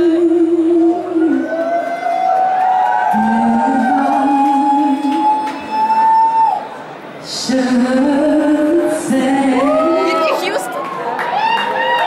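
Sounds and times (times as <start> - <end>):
woman singing a ballad: 0.0 - 1.5, 3.1 - 5.8, 7.2 - 10.6.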